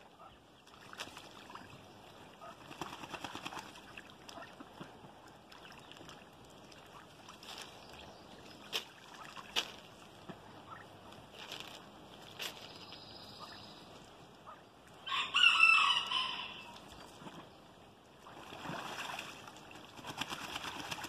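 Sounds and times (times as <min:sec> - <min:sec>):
ducks splashing in water: 0:00.2 - 0:12.7, 0:18.1 - 0:21.0.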